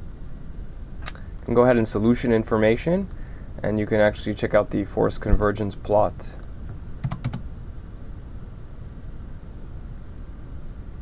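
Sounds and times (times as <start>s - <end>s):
low background hum: 0.0s - 11.0s
keyboard keystrokes: 7.0s - 7.4s.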